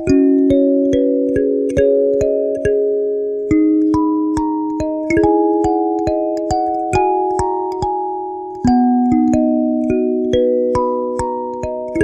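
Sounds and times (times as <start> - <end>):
kalimba melody: 0.0 - 12.0.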